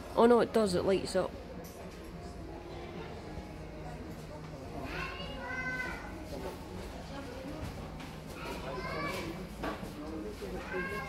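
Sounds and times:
murmur of shoppers: 0:00.0 - 0:11.0.

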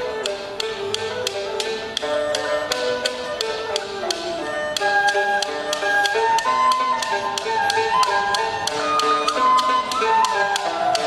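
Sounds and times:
bowed fiddle and flute melody: 0:00.0 - 0:11.0
plucked lutes: 0:00.0 - 0:11.0
sharp regular clicks: 0:00.0 - 0:11.0.

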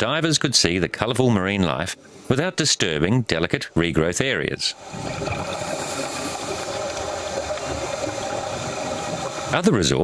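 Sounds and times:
faint humming tones: 0:03.5 - 0:10.0.

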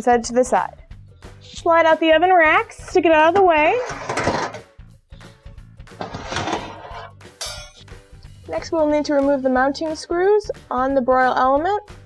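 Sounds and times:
background music: 0:00.0 - 0:12.0
oven racks scraping metal: 0:02.7 - 0:04.7, 0:05.9 - 0:07.2.

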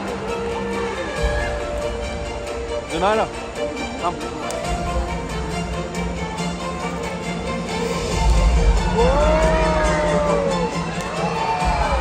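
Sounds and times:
show music: 0:00.0 - 0:12.0.

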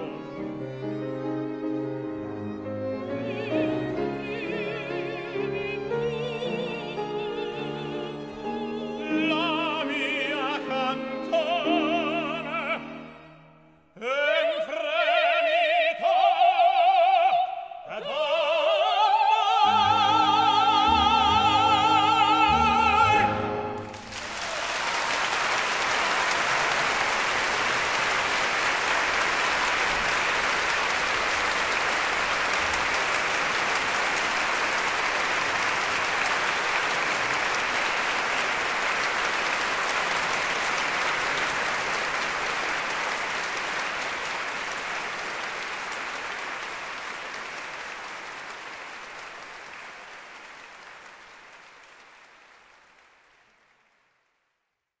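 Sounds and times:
audience applauding: 0:19.7 - 0:54.4.

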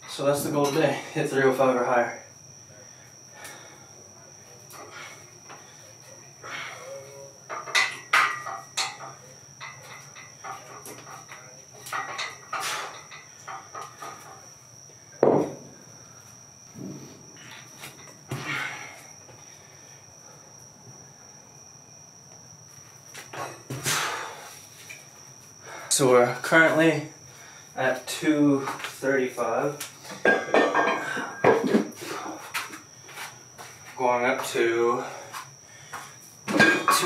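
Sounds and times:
faint high whine: 0:00.0 - 0:37.0
heavy thump: 0:15.2 - 0:15.8, 0:16.7 - 0:17.4.

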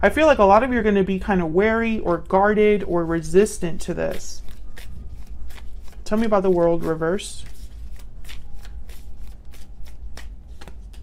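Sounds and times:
cards being shuffled: 0:03.0 - 0:11.0.

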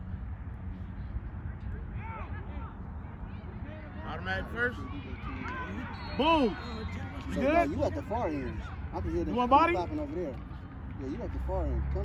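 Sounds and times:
steady low rumble: 0:00.0 - 0:05.0.

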